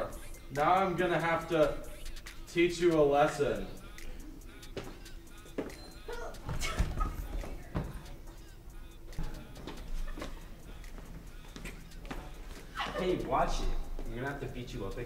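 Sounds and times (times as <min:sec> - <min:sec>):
scuffling on a hard floor: 0:06.4 - 0:08.2.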